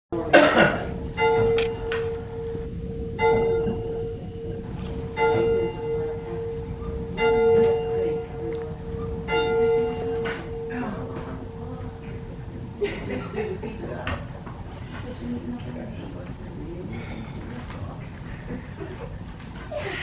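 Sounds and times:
church bell ringing: 0:00.2 - 0:13.4
noisy knock: 0:00.5 - 0:12.3.

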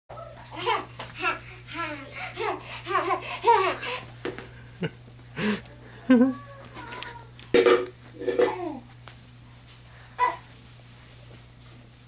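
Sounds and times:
toddler laughing: 0:00.5 - 0:04.1.

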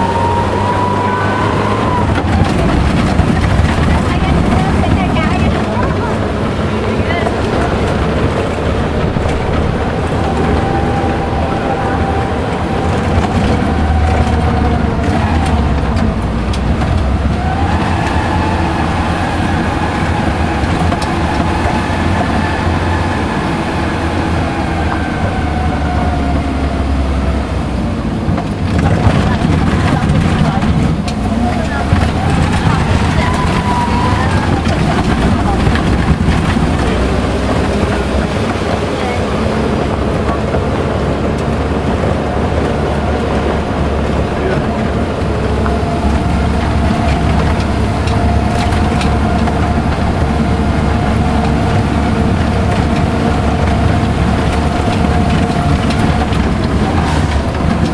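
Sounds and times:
knocks and rattles over bumps: 0:00.0 - 0:57.9
vehicle engine whining: 0:00.0 - 0:57.9.

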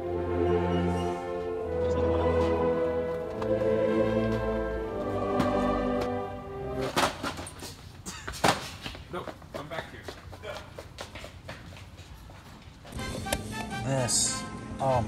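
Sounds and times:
music: 0:00.0 - 0:07.4, 0:12.9 - 0:15.0.

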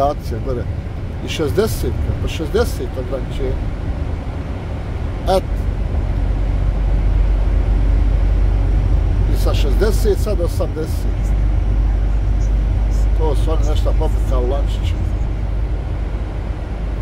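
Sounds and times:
man speaking: 0:00.0 - 0:03.6, 0:05.3 - 0:05.6, 0:09.2 - 0:11.4, 0:12.9 - 0:15.2
lorry diesel engine rumble: 0:00.0 - 0:17.0
road noise: 0:00.0 - 0:17.0.

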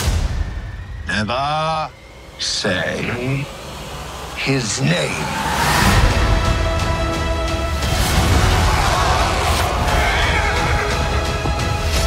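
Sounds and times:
loud trailer music: 0:00.0 - 0:01.0, 0:05.2 - 0:12.0.

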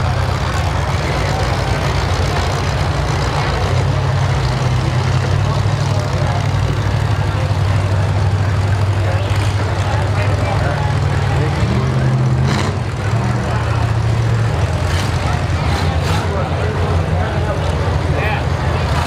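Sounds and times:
car engines rumbling: 0:00.0 - 0:19.0
engine revving: 0:00.0 - 0:19.0.

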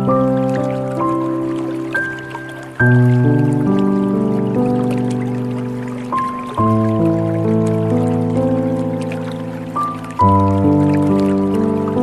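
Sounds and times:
slow calm piano music: 0:00.0 - 0:12.0
water trickling: 0:00.0 - 0:12.0.

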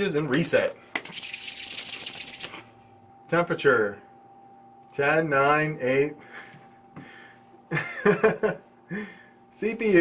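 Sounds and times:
palms rubbing together: 0:01.0 - 0:02.6.

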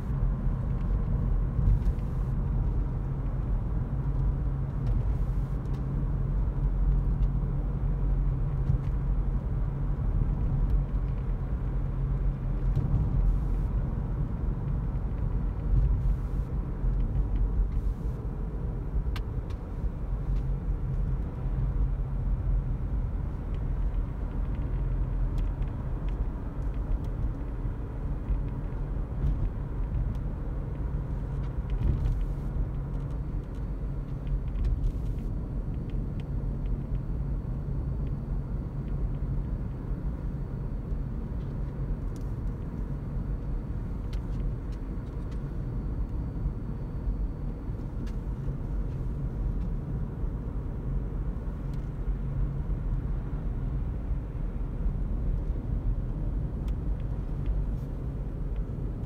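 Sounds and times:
road and tyre rumble: 0:00.0 - 0:59.0.

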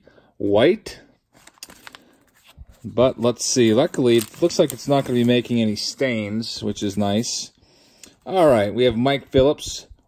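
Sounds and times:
wrapper crinkling and rustling: 0:01.4 - 0:06.3.

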